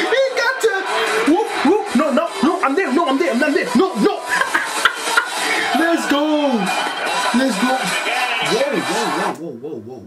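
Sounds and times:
man talking: 0:07.4 - 0:10.0.

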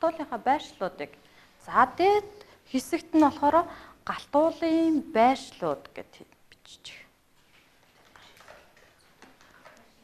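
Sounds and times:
small clicks and rustles: 0:07.4 - 0:10.0.

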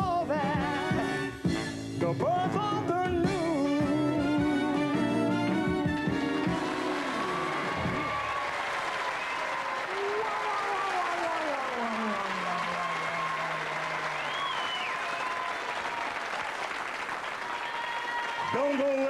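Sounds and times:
studio audience applauding: 0:05.9 - 0:19.0.

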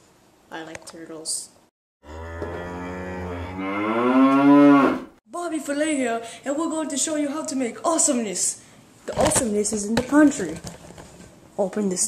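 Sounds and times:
cow mooing: 0:02.0 - 0:05.1.

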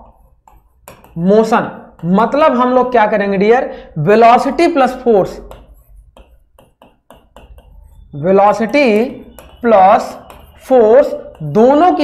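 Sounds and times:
marker squeaking on whiteboard: 0:00.0 - 0:12.0.

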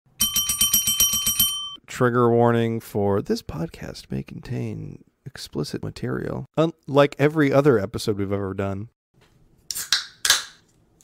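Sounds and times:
bell ringing in rapid trill: 0:00.2 - 0:01.8.

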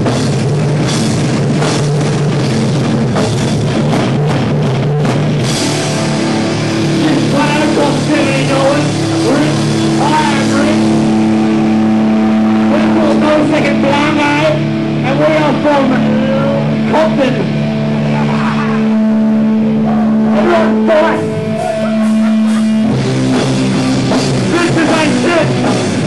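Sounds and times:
rock band ringing chord: 0:00.0 - 0:26.0
voices shouting: 0:19.8 - 0:22.8.

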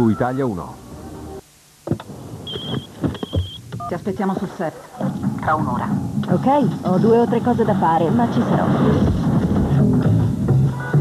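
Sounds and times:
phone ringing: 0:02.5 - 0:04.1.

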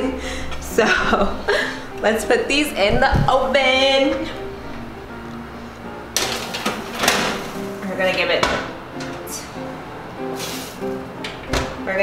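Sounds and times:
background music: 0:00.0 - 0:12.0
metal pan scraping on wire rack: 0:06.2 - 0:08.3.

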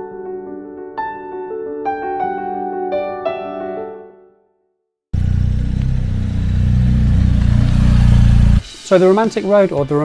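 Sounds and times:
motorcycle engine running: 0:05.2 - 0:08.6.

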